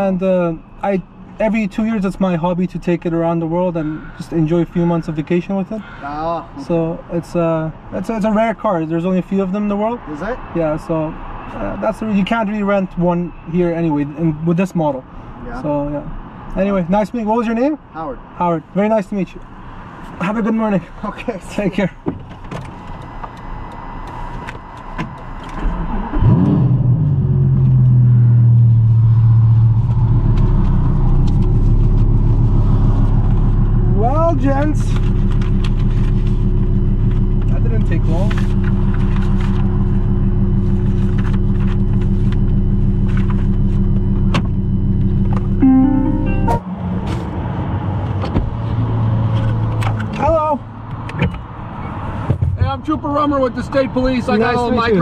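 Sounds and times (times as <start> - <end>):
car engine starting and idling: 29.2 - 47.3.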